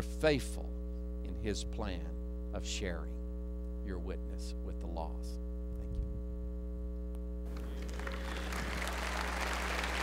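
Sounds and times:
electrical mains hum: 0:00.0 - 0:10.0
audience applauding: 0:07.5 - 0:10.0.

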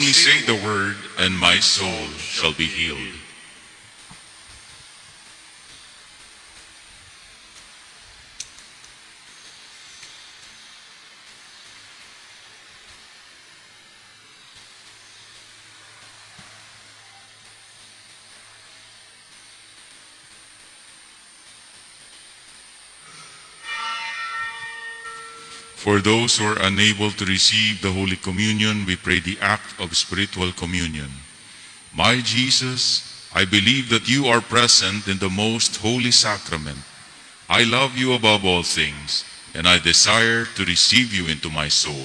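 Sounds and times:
faint hum: 0:00.0 - 0:42.0
microphone hiss: 0:00.0 - 0:42.0.

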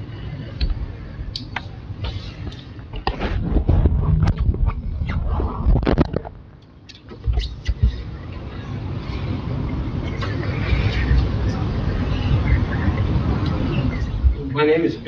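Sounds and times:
muffled murmuring: 0:07.9 - 0:15.0.

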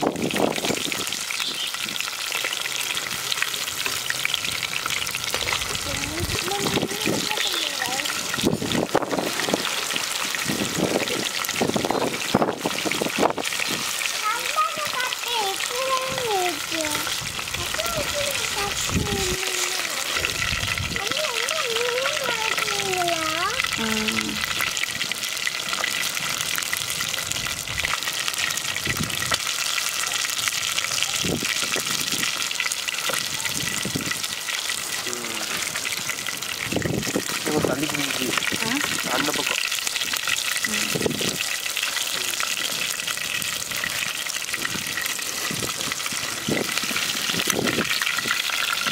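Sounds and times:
fish deep-frying in oil: 0:00.0 - 0:48.9.

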